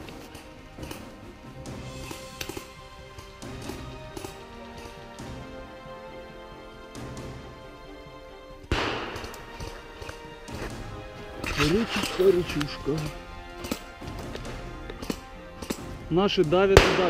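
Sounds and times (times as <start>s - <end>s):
background music: 0.0s - 17.0s
airsoft gunfire cracks: 8.7s - 9.7s, 16.7s - 17.0s.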